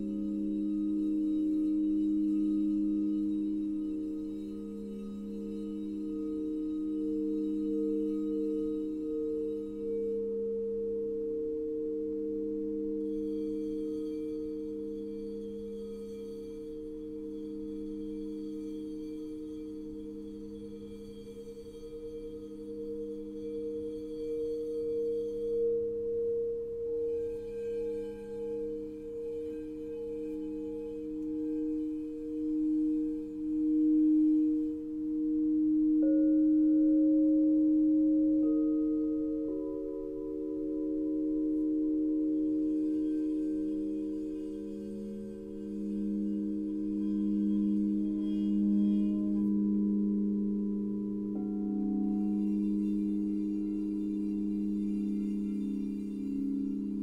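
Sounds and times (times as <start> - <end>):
crystal singing bowls ringing: 0.0 - 57.0.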